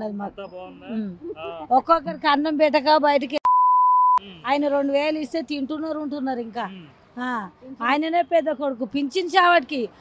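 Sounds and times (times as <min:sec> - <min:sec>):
woman talking: 0:01.0 - 0:03.4, 0:04.5 - 0:09.9
censor bleep: 0:03.4 - 0:04.2.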